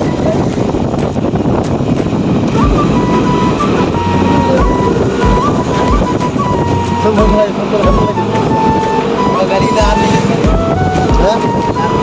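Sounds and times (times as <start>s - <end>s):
melody over low beat: 0.0s - 12.0s
road and wind noise: 0.0s - 12.0s.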